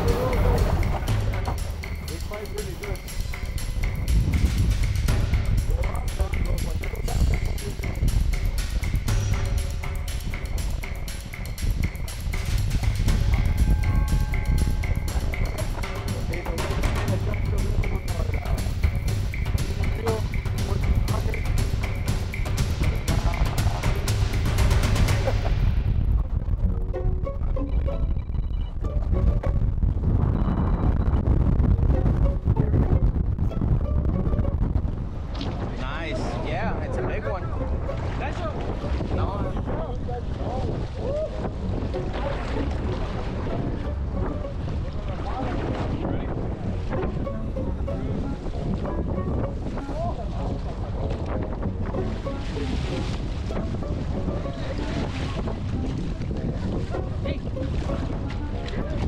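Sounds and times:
background music: 0:00.0 - 0:59.0
sea water washing around boat: 0:00.0 - 0:59.0
wind buffeting microphone: 0:00.0 - 0:59.0.

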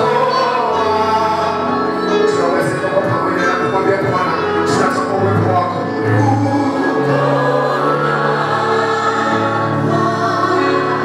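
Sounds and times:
choir singing held chords: 0:00.0 - 0:02.4, 0:05.8 - 0:11.0
band accompaniment: 0:00.0 - 0:11.0.

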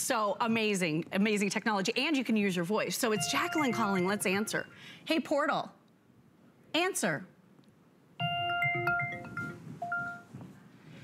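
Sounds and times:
bell-like electronic chime: 0:03.2 - 0:04.6.

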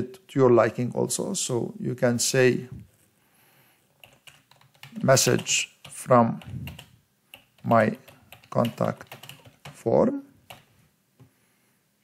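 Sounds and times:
faint keyboard typing: 0:03.9 - 0:11.3.

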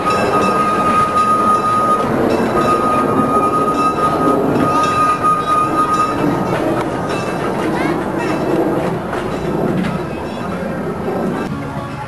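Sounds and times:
high-pitched wheel squeal: 0:00.0 - 0:06.6
train rolling rumble: 0:00.0 - 0:12.0.

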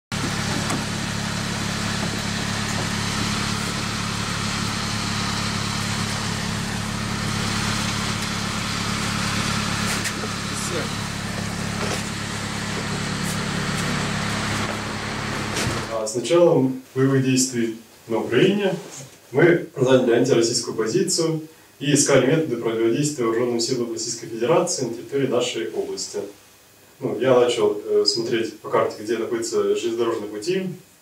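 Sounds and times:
van engine idling: 0:00.1 - 0:16.0.

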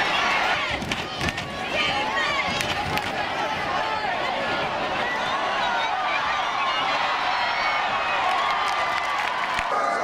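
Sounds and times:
voices of players and spectators: 0:00.0 - 0:10.0.

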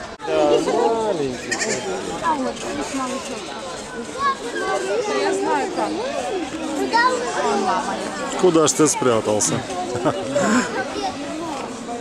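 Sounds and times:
people's voices: 0:00.0 - 0:12.0.

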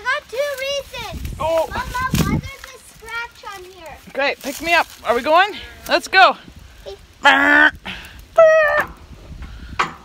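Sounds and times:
high-pitched vocal cry: 0:06.9 - 0:09.0.

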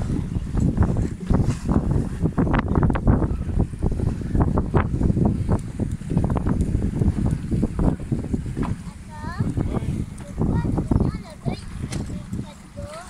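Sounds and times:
waves splashing against hull: 0:00.0 - 0:13.0
wind buffeting microphone: 0:00.0 - 0:13.0.

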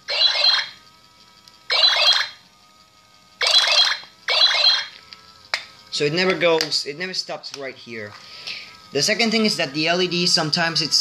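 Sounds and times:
electronic toy sound effects: 0:00.0 - 0:00.8, 0:01.7 - 0:02.4, 0:03.4 - 0:05.0.

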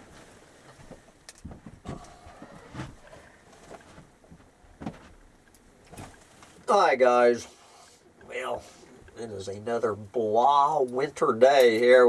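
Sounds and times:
footsteps up close: 0:00.0 - 0:05.2.

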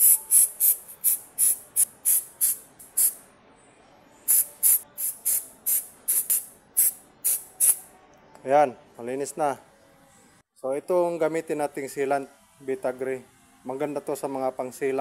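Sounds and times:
spray bottle hissing bursts: 0:00.0 - 0:03.2, 0:04.3 - 0:07.8.

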